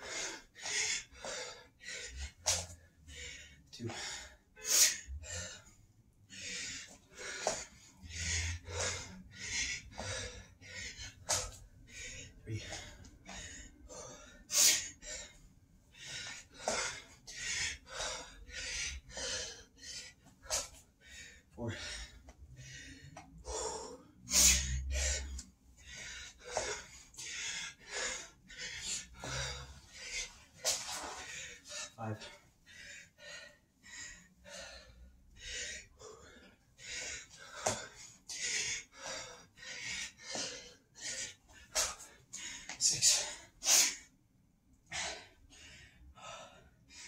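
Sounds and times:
man gasping for breath: 0:00.0 - 0:44.0.

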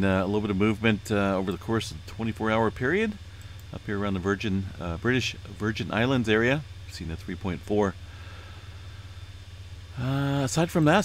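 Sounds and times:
low background hum: 0:00.0 - 0:11.0
faint hiss: 0:07.9 - 0:11.0.

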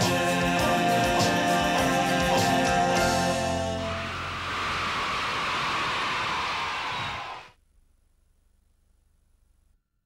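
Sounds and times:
steady rushing noise: 0:04.0 - 0:07.5.

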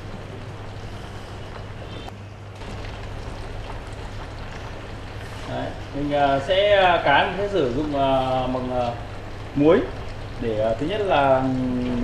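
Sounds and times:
low background hum and hiss: 0:00.0 - 0:12.0.

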